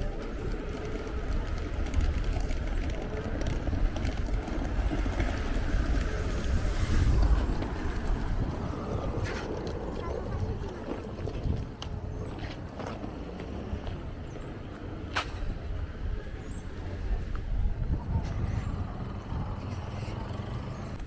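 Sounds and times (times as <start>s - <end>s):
wind rumble on microphone: 0.0s - 12.8s, 13.6s - 21.0s.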